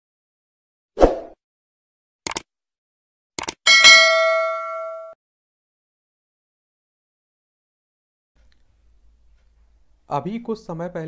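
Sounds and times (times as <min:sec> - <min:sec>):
notification bell chime: 0:03.7 - 0:05.2.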